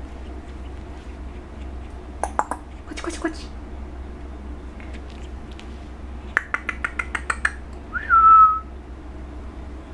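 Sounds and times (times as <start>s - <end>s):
person whistling: 7.9s - 8.7s.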